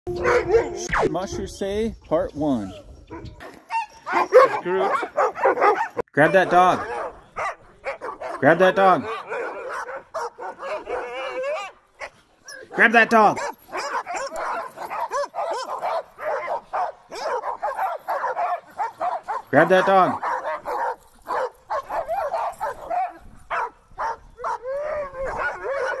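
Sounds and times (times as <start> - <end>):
dogs whining and yipping: 0.1 - 1.1, 2.7 - 8.4, 9.0 - 12.8, 13.4 - 26.0.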